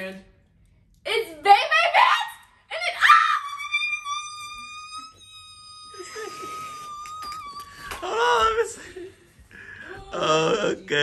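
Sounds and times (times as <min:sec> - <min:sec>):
high-pitched squeal: 0:03.6 - 0:08.5
laughter: 0:06.0 - 0:07.0.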